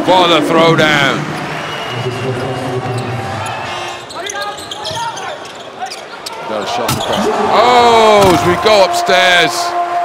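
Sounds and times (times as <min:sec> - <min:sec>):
arena crowd noise and voices: 0:00.0 - 0:10.0.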